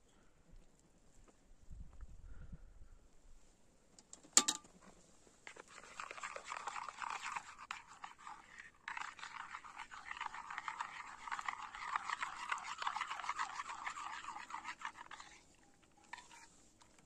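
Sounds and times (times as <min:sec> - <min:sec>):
metal spoon scraping and squelching: 0:04.4 - 0:04.6, 0:05.4 - 0:17.0.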